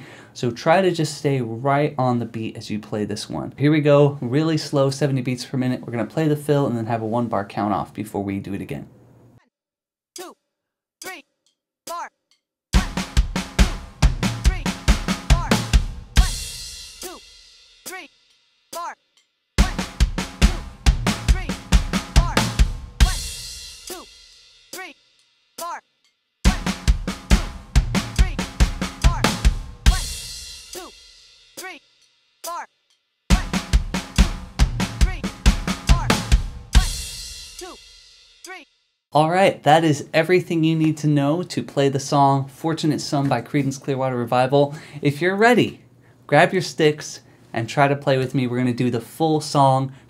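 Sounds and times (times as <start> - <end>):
electronic drum fill: 33.3 - 37.2.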